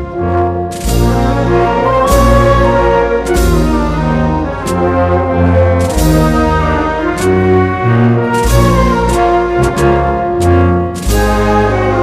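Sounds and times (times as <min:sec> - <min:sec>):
brass band playing: 0:00.0 - 0:12.0.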